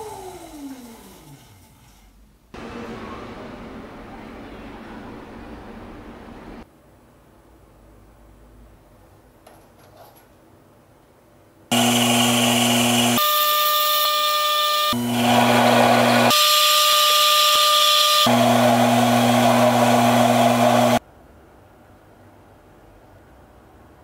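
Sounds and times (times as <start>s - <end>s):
motor hum: 11.7s - 16.8s
lathe cutting metal: 11.7s - 21.0s.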